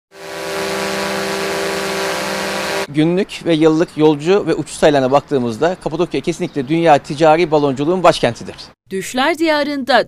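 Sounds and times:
machine hum with hiss: 0:00.1 - 0:02.9.

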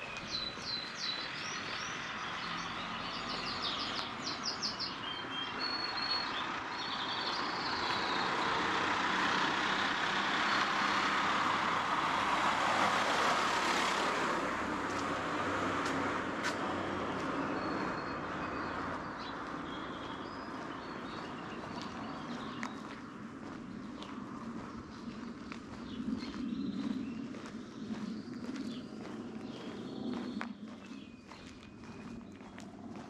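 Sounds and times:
small birds chirping: 0:00.0 - 0:11.5, 0:15.9 - 0:33.0
car passing by: 0:00.7 - 0:23.2.

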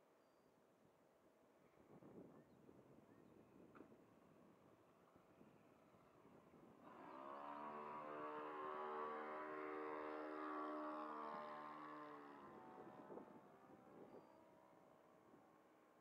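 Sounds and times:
model airplane engine flying past: 0:06.7 - 0:15.9.

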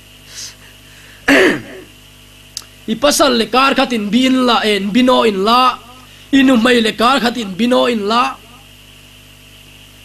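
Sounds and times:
man clearing his throat: 0:01.2 - 0:02.0.

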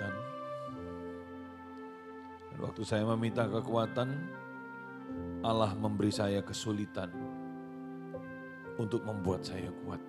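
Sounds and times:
soft music of held chords: 0:00.0 - 0:10.0.

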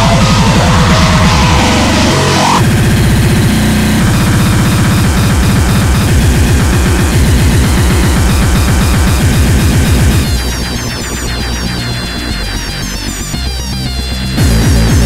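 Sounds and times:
warbling high synth lines: 0:00.0 - 0:13.3
fast distorted kick drums: 0:00.0 - 0:15.0.

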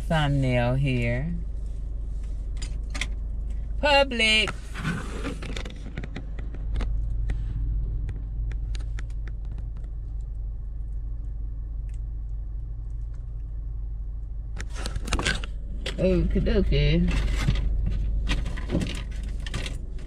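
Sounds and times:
car engine idling: 0:00.0 - 0:20.0.

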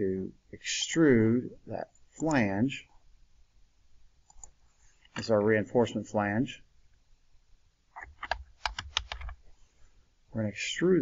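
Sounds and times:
typing on computer keyboard: 0:08.0 - 0:09.4.

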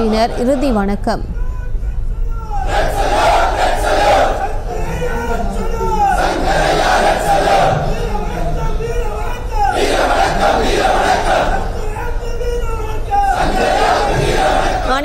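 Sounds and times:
crowd shouting slogans: 0:02.5 - 0:15.0.

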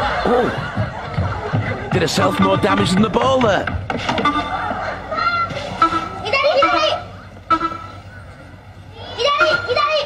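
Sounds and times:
high-pitched shouting voices: 0:04.5 - 0:08.0, 0:08.9 - 0:10.0.

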